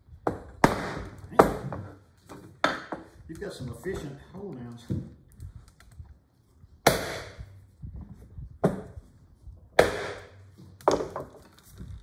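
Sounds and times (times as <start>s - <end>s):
wooden mallet striking metal: 9.8s - 10.3s.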